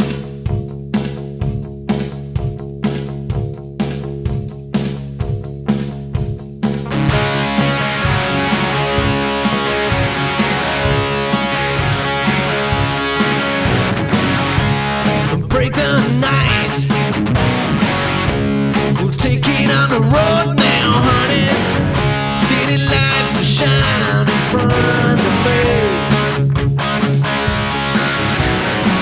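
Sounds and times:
rock band playing: 0.0s - 29.0s.

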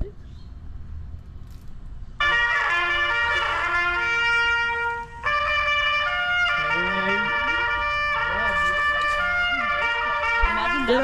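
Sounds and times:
trumpet long held notes: 2.2s - 11.0s.

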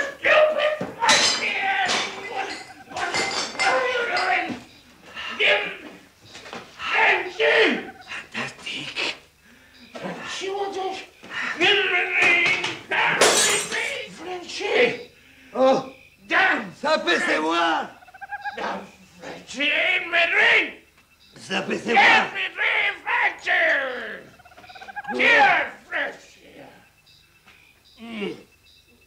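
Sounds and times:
glass breaking: 1.0s - 4.3s, 12.2s - 14.0s.

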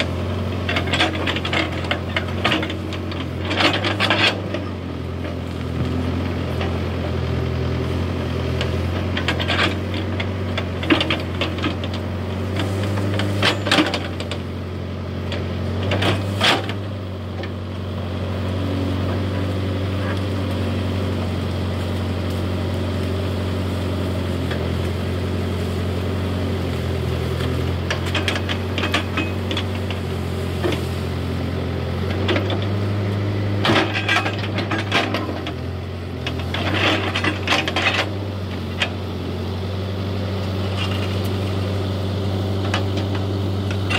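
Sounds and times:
branches cracking and bucket scraping: 0.0s - 39.2s
diesel engine running under load: 0.0s - 43.9s.

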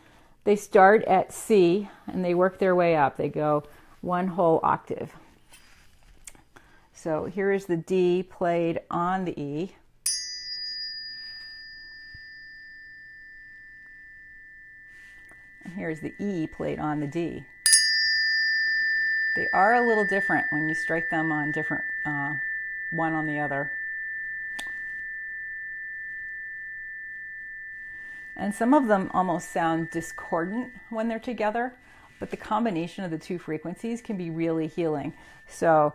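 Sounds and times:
tuning forks ringing: 10.0s - 35.9s
tuning fork metallic strike: 10.1s - 32.7s, 34.0s - 35.9s.

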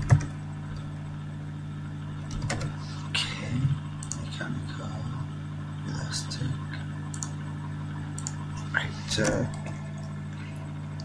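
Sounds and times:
computer keyboard keystrokes: 0.0s - 0.8s, 2.3s - 2.8s, 4.0s - 4.3s, 7.1s - 7.4s, 8.2s - 8.4s
steady low hum: 0.0s - 11.0s.

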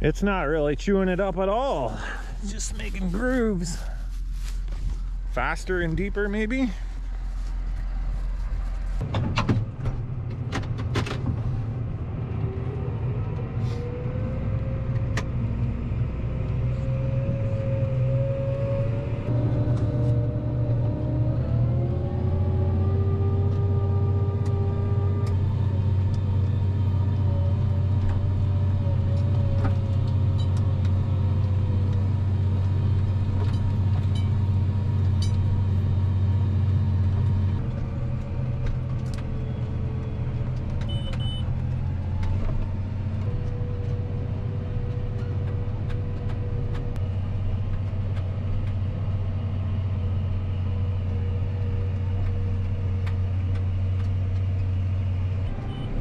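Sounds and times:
tractor engine droning under load: 0.0s - 56.0s.

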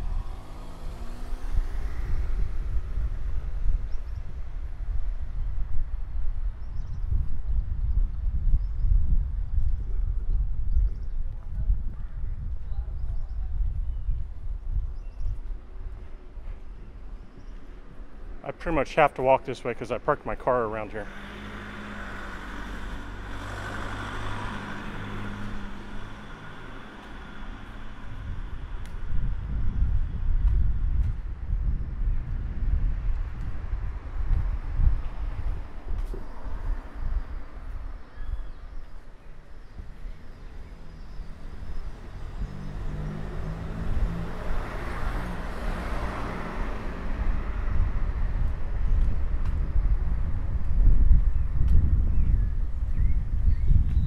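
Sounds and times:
car passing: 0.0s - 3.9s, 17.8s - 29.5s, 39.2s - 51.2s
wind rumble on microphone: 0.0s - 54.0s.

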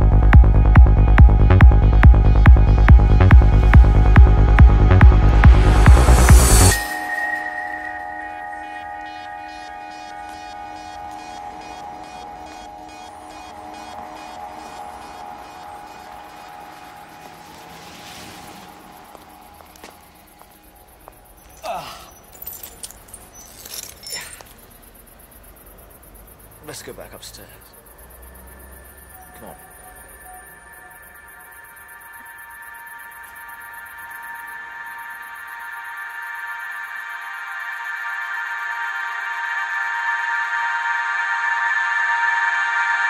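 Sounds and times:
synthesizer drone: 0.0s - 21.8s, 27.7s - 43.0s.

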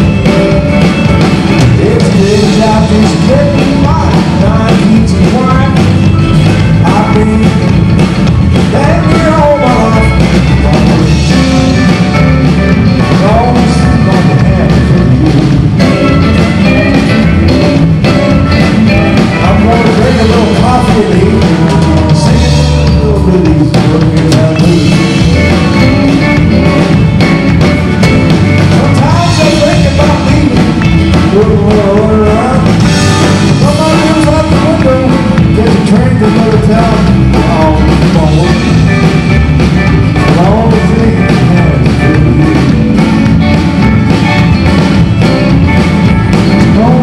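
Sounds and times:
bass guitar: 0.0s - 47.0s
drums: 0.0s - 47.0s
electric guitar lead: 0.0s - 47.0s.

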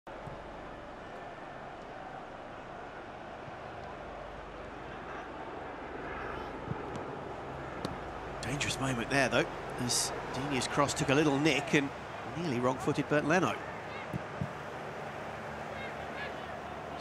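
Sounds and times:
players shouting faintly: 8.6s - 17.0s.

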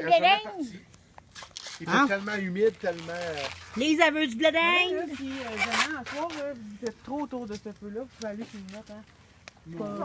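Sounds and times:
people's voices: 3.8s - 10.0s.

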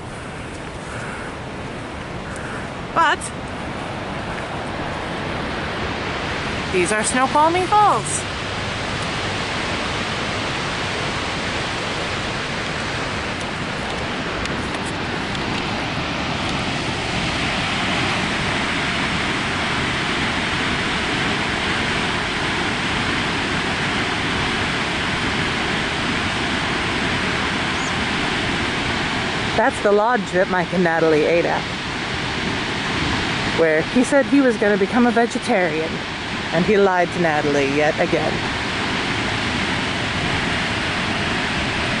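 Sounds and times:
waterfall roaring: 0.0s - 42.0s.

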